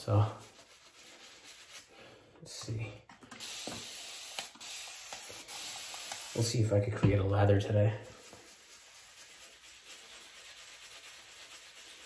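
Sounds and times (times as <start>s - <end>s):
shaving brush swirling in soap: 0.0s - 2.0s, 8.1s - 12.0s.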